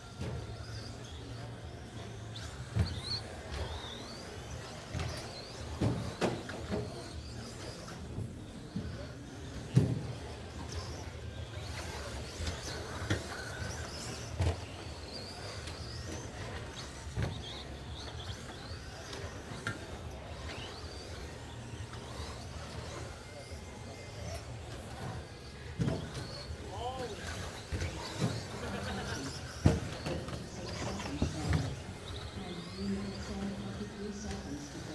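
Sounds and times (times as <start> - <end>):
electric motor whines: 0.0 - 34.9.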